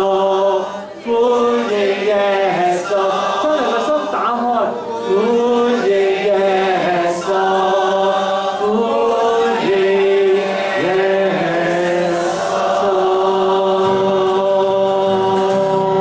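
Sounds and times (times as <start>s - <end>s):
congregation singing a worship song: 0.0s - 16.0s
man's voice leading singing: 0.0s - 16.0s.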